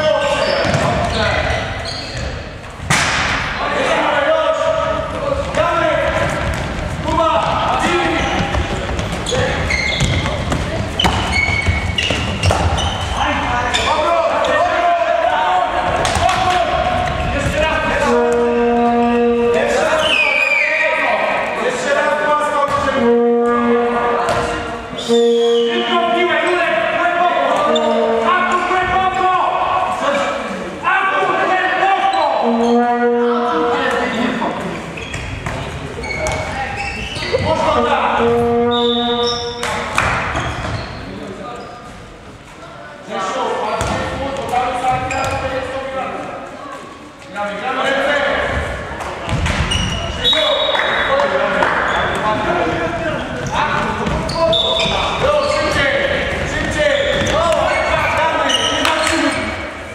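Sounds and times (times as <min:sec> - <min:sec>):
voices shouting in a hall: 0:00.0 - 0:41.9, 0:42.6 - 0:59.9
ball bouncing on hall floor: 0:00.5 - 0:03.5, 0:04.7 - 0:13.2, 0:15.8 - 0:19.6, 0:22.6 - 0:24.8, 0:35.0 - 0:41.0, 0:43.8 - 0:45.6, 0:48.5 - 0:59.6.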